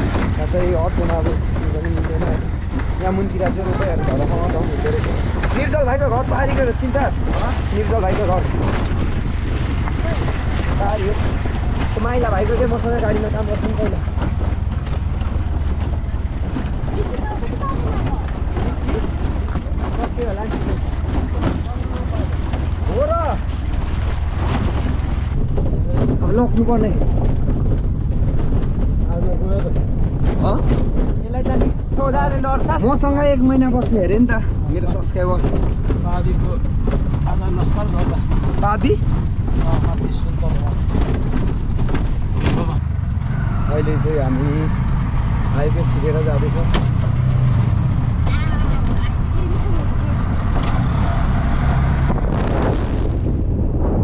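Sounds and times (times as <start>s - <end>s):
vehicle rumbling: 0.0s - 54.0s
wind buffeting microphone: 0.0s - 54.0s.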